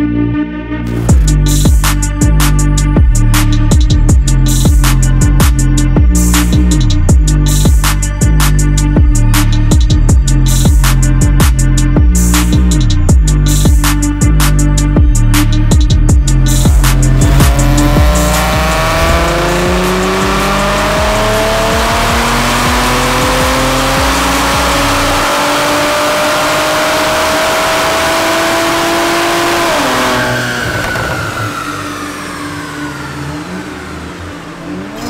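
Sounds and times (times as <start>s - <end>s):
car engine under full load: 0.9s - 35.0s.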